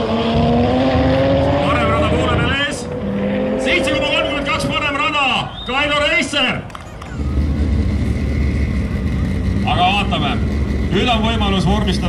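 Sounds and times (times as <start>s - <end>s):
drag cars idling rumble: 6.6s - 12.0s.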